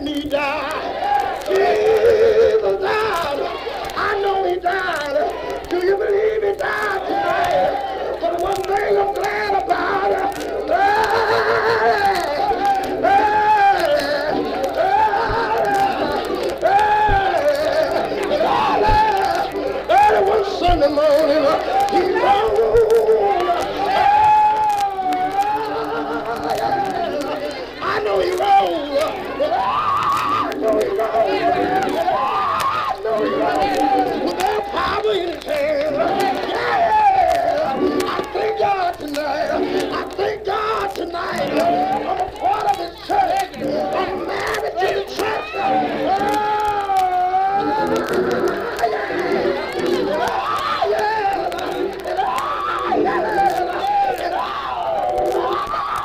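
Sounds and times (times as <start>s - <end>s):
congregation voices: 0.0s - 56.0s
man chanting preaching: 1.5s - 32.3s.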